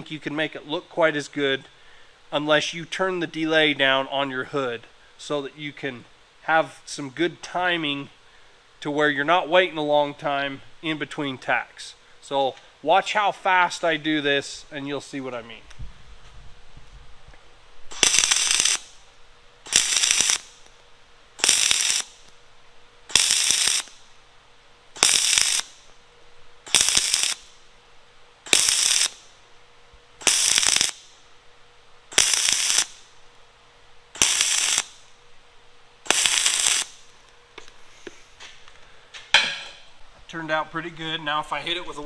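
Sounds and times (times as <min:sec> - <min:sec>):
welding arc bursts: 0:17.9 - 0:20.8, 0:21.4 - 0:22.3, 0:23.0 - 0:24.2, 0:24.9 - 0:25.9, 0:26.6 - 0:27.6, 0:28.4 - 0:29.4, 0:30.2 - 0:31.2, 0:32.1 - 0:33.2, 0:34.1 - 0:35.2, 0:36.0 - 0:37.1.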